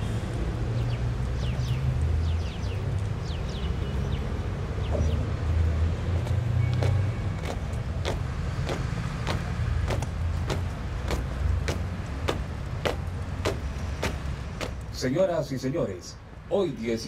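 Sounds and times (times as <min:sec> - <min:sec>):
boot heels marching on stone: 0:06.1 - 0:14.9.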